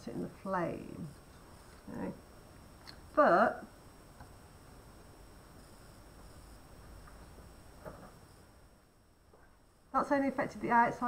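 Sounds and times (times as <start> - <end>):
bunsen burner flame hissing: 0.5 - 9.1.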